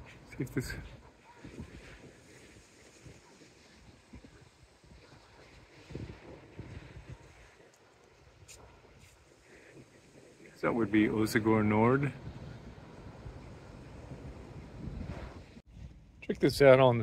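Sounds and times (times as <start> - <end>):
wind buffeting microphone: 0.0 - 7.6, 9.8 - 17.0
distant breaking surf: 0.0 - 15.6.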